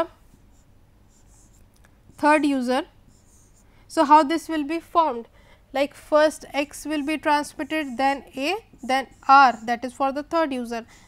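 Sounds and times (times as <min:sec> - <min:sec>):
pen scratching on a board: 0:00.3 - 0:03.6, 0:06.6 - 0:10.0.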